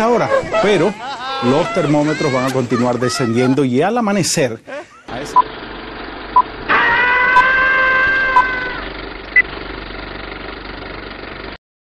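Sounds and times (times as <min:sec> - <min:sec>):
held pitched tone: 0:06.4 - 0:09.4.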